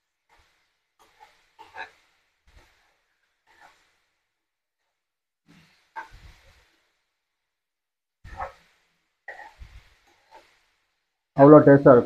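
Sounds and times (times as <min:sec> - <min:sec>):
low scraping in pan: 0:00.3 - 0:04.1, 0:08.3 - 0:10.7.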